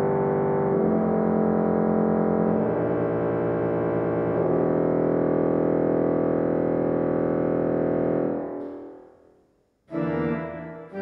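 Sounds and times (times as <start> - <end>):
pipe organ chords: 0.0 - 8.9, 9.9 - 11.0.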